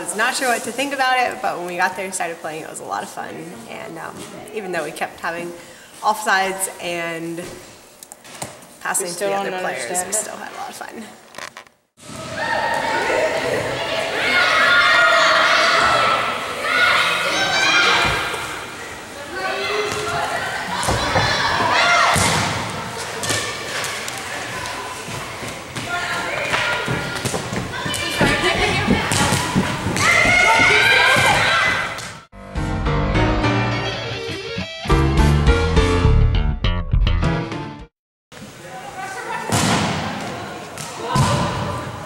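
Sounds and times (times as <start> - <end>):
players shouting and cheering: 12.1 - 32.2, 38.5 - 42.0.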